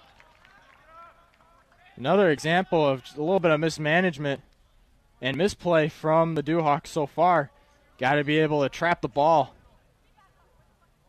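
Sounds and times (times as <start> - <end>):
distant shouting voices: 0.8 - 3.7.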